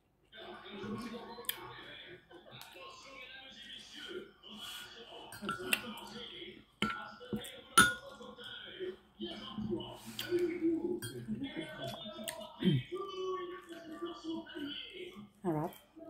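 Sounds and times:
television voices: 0.0s - 16.0s
cutlery clinking on plate: 5.3s - 5.9s, 7.8s - 8.2s.

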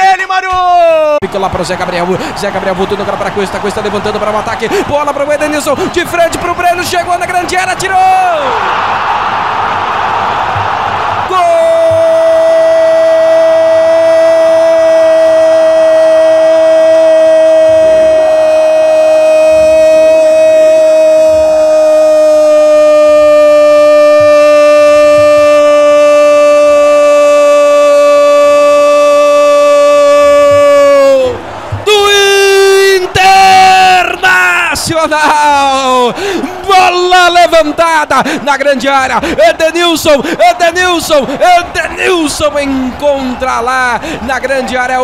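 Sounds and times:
man shouting excitedly: 0.0s - 8.7s, 11.3s - 45.0s
radio commentator's long goal cry: 11.2s - 45.0s.

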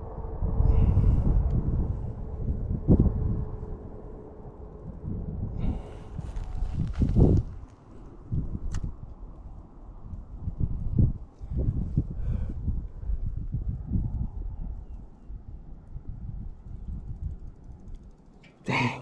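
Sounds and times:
wind buffeting microphone: 0.0s - 18.6s.

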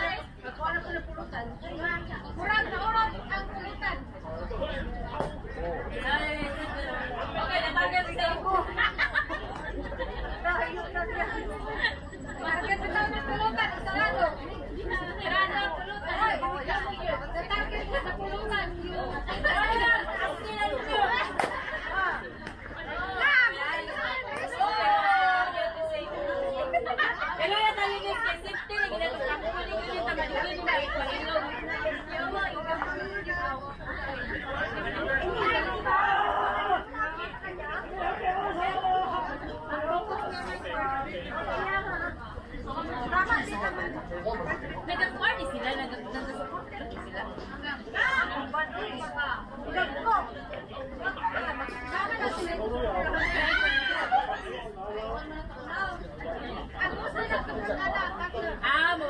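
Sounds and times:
people chattering and calling out: 0.0s - 59.0s.

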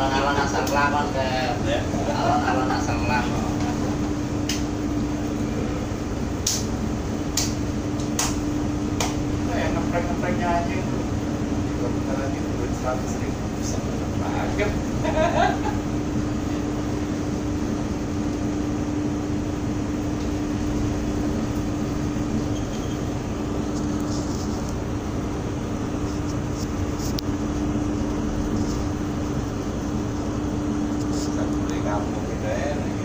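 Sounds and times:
ship engine droning: 0.0s - 33.0s.

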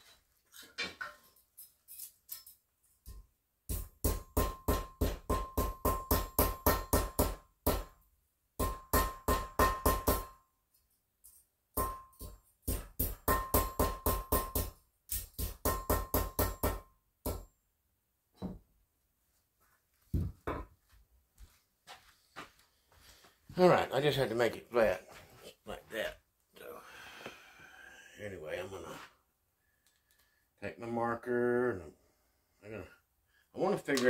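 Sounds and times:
hammer striking metal tape: 2.3s - 8.0s, 8.6s - 10.4s, 11.8s - 17.5s.

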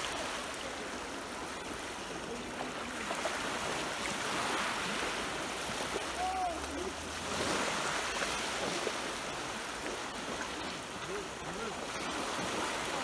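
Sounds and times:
small waves breaking on shore: 0.0s - 13.0s.

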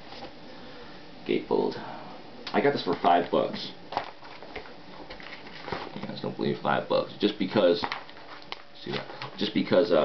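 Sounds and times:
record sleeve rustling: 2.8s - 6.2s, 7.7s - 9.7s.

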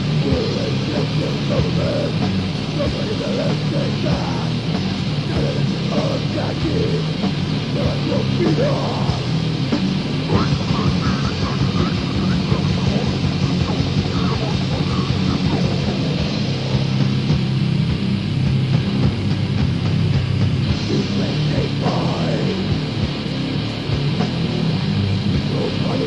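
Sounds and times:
distorted low guitars: 0.0s - 26.0s
fast dense drumming: 0.0s - 26.0s.

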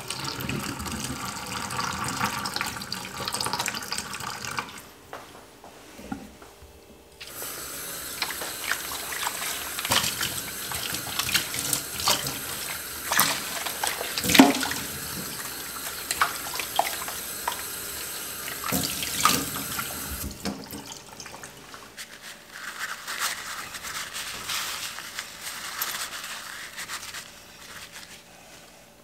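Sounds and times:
small splashes and knocks: 8.2s - 17.6s
tap water splashing into metal sink: 8.2s - 21.6s.

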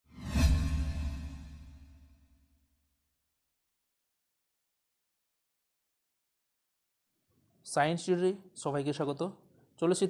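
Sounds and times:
whoosh with deep rumble: 0.0s - 2.2s.

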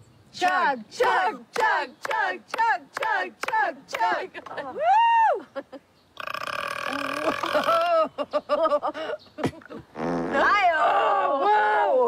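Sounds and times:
people laughing and exclaiming: 4.2s - 5.8s, 10.5s - 12.0s
woman burping loudly: 6.2s - 8.1s.

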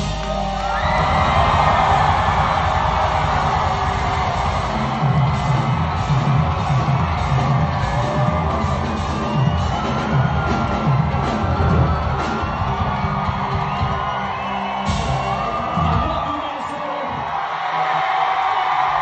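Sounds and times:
live rock band playing loudly: 0.0s - 16.1s
pulsing bass beat: 0.0s - 16.1s
audience yelling and whooping: 0.0s - 19.0s.

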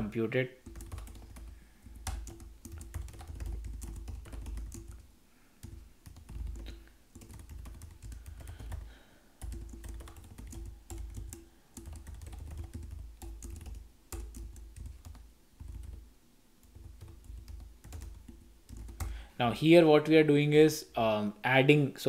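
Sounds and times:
keyboard typing clicks: 0.6s - 5.0s, 5.6s - 16.0s.

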